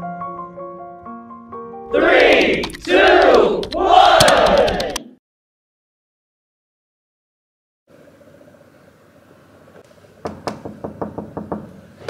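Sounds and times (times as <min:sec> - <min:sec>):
sharp knocks: 0:10.2 - 0:11.8.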